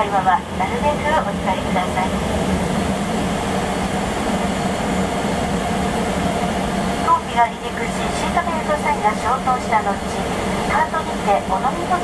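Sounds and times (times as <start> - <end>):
jet engines idling in cabin: 0.0 - 12.0.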